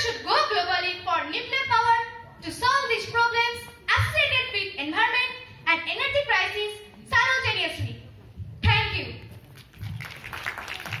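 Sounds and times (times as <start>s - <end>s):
audience applauding: 9.5s - 11.0s.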